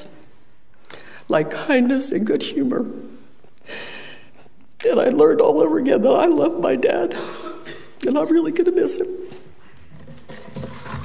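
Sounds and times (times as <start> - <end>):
woman speaking: 1.3 - 3.2, 4.8 - 7.3, 8.0 - 9.4.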